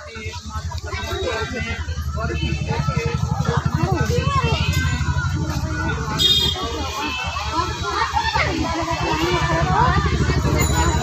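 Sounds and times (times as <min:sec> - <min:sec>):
women and children chattering: 0:00.0 - 0:11.0.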